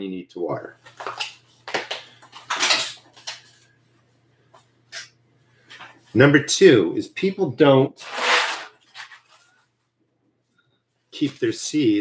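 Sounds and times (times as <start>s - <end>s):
plastic trays clattering: 1.1s - 3.4s
rustling scrape: 8.0s - 9.7s.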